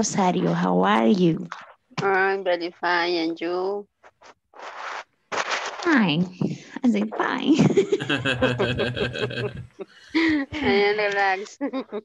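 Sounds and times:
person speaking: 0.0s - 3.9s, 5.6s - 12.0s
scratchy noise bursts: 0.0s - 9.8s.

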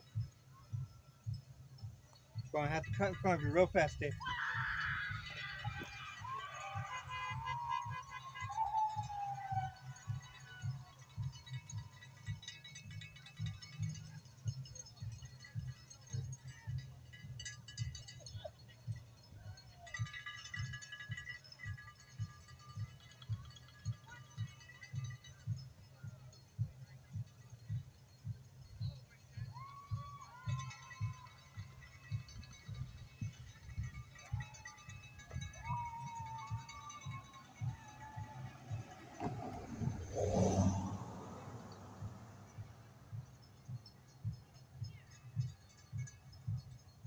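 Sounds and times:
distant marching band: 0.0s - 47.0s.

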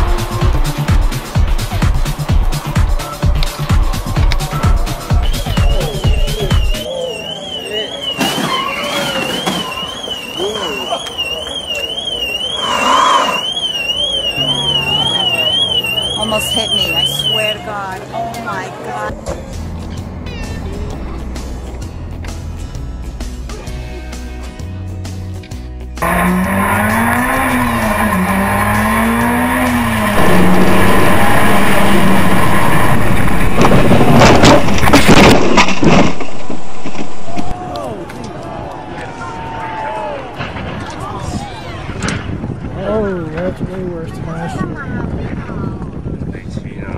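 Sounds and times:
people's voices: 4.4s - 21.4s
car alarm warbling: 5.8s - 17.6s
racing car engine revving: 26.0s - 34.8s
tyre and wind noise: 31.5s - 46.9s
car crashing knocks and scrapes: 32.0s - 37.5s.

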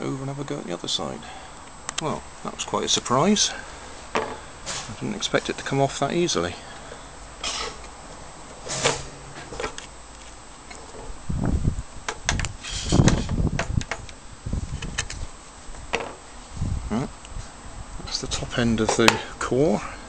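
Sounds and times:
metal core handling clicks and knocks: 18.8s - 19.3s.

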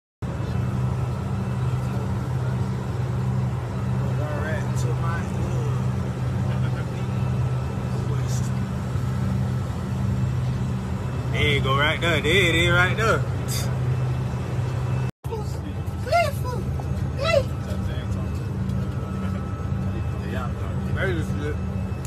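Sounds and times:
vehicle engine drone: 0.2s - 22.0s.

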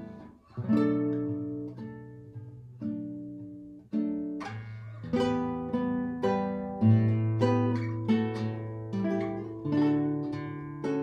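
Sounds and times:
classical guitar fingerpicked: 0.0s - 11.0s.

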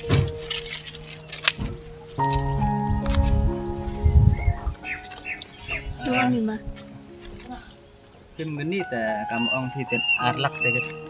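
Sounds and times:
held music notes: 0.0s - 11.0s
bird chirping: 4.0s - 11.0s.

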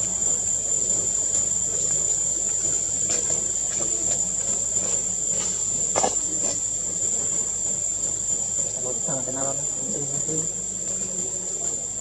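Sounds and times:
insects buzzing: 0.0s - 11.4s.

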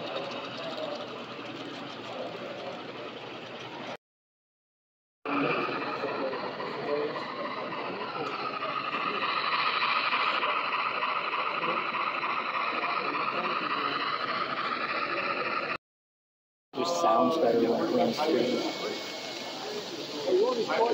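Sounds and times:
people talking: 0.0s - 3.9s, 5.3s - 15.8s, 16.8s - 20.9s
model train rolling on rails: 0.0s - 4.0s, 5.3s - 15.8s, 16.9s - 20.9s.

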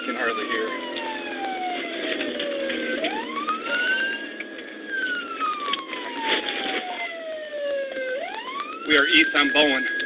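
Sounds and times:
police siren wailing: 0.0s - 10.0s.

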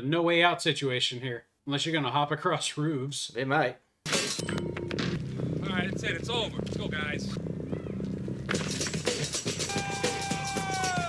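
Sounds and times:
low music bed: 4.4s - 10.4s
high wavering voice-like cries: 9.7s - 11.0s.

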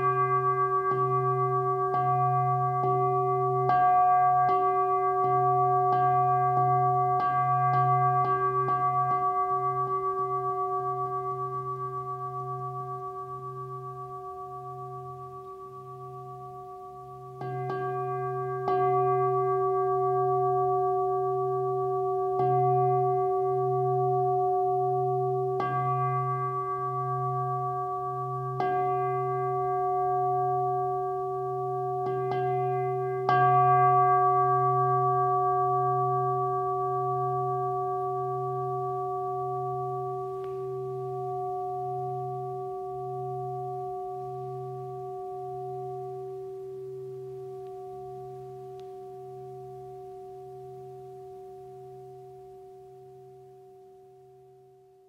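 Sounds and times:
singing bowl ringing: 0.0s - 55.0s.

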